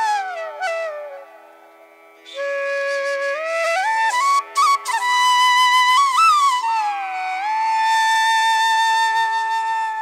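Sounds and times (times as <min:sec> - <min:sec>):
flute melody: 0:00.0 - 0:01.5, 0:02.3 - 0:10.0.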